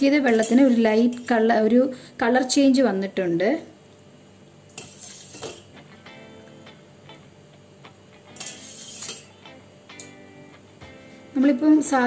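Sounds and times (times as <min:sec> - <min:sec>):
background music: 0:09.4 - 0:12.0.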